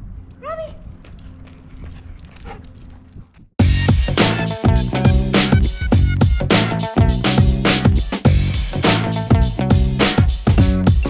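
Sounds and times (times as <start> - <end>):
footsteps on asphalt: 0.8 - 3.6.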